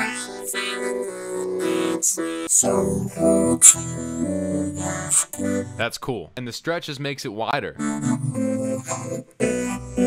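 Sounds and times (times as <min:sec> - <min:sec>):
robotic vocoded singing: 0:00.0 - 0:06.0, 0:07.6 - 0:10.0.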